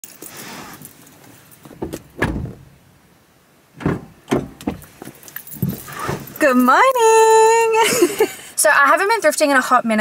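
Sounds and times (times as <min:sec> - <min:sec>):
thumps and knocks in car seat: 0:01.6 - 0:02.8, 0:03.8 - 0:06.4.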